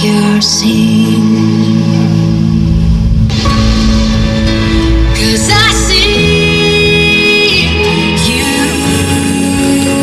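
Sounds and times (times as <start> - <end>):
deep bass: 0.0 - 10.0.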